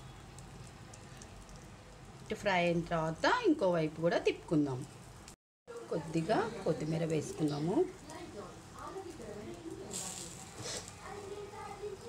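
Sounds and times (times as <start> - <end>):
food sizzling and crackling on griddle: 4.8 - 12.0.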